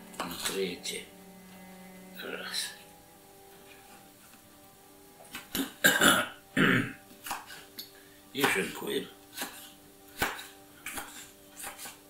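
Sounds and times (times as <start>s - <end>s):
man clearing throat: 5.6s - 7.0s
knife chopping on cutting board: 7.2s - 7.6s, 9.3s - 12.0s.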